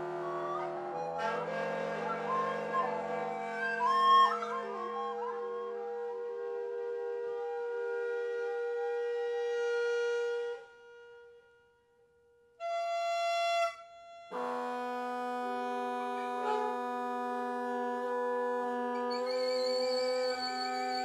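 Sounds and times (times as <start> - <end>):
clarinet long notes: 0.0 - 9.2, 14.3 - 21.0
saxophone long notes: 14.3 - 21.0.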